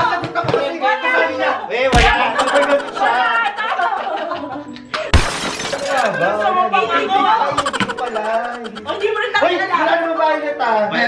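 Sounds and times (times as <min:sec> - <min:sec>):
people talking: 0:02.0 - 0:04.4, 0:07.5 - 0:09.5
people laughing: 0:02.0 - 0:06.2, 0:07.4 - 0:09.4.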